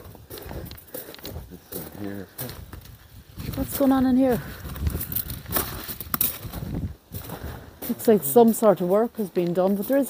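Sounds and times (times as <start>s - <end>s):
footsteps crunching on gravel: 0.0s - 10.0s.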